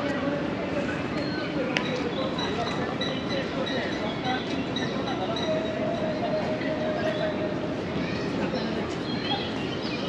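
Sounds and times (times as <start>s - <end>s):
city noise: 0.0s - 10.0s.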